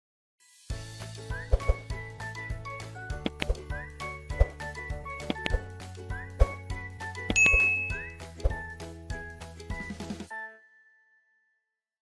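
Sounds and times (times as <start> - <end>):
bell-like chime: 7.4 - 8.2.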